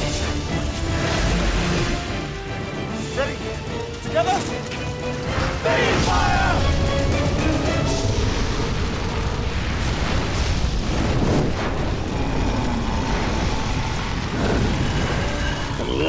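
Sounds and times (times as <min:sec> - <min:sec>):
huge fire roaring: 0:04.8 - 0:16.0.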